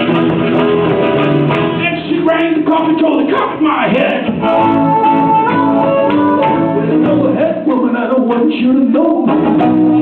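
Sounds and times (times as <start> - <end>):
guitar accompaniment: 0.0 - 10.0
blues harmonica solo: 4.4 - 7.3.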